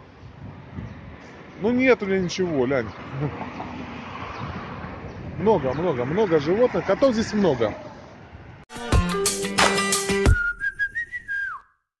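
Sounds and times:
music with sharp drum hits: 0:08.7 - 0:10.4
whistled tune gliding down: 0:10.0 - 0:11.9.

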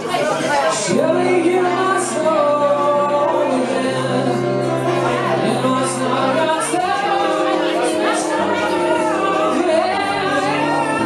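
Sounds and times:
acoustic guitar chords: 0:00.5 - 0:11.0
man singing: 0:00.6 - 0:11.0.

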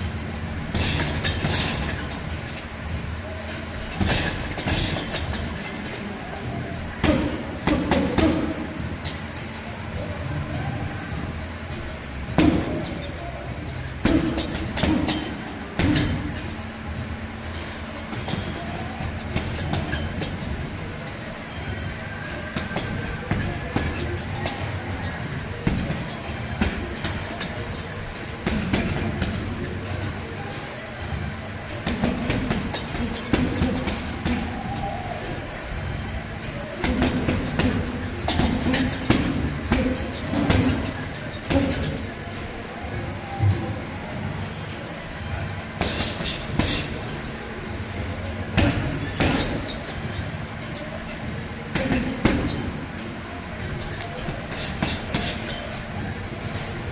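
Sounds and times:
gloves punching heavy bag: 0:14.0 - 0:16.4, 0:36.8 - 0:42.0.

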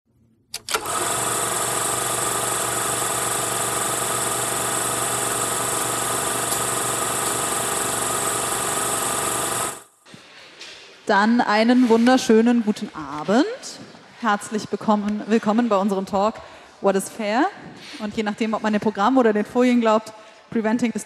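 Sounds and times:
film projector rattling: 0:00.6 - 0:09.8
projector clicks: 0:04.8 - 0:08.0.

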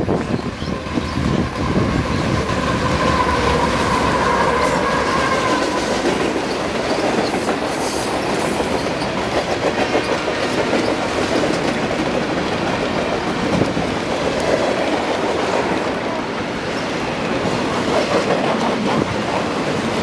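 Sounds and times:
train wheels clickety-clack: 0:00.0 - 0:20.0.

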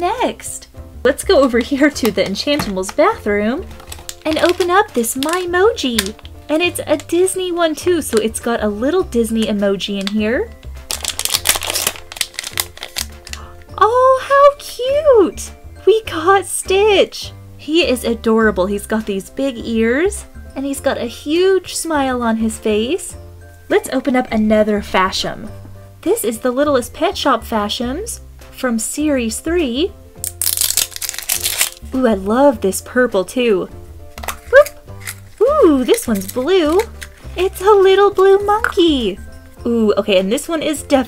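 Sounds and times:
foil bag crinkling and tearing: 0:02.0 - 0:06.3, 0:10.8 - 0:13.5, 0:30.2 - 0:31.9, 0:34.2 - 0:37.4.

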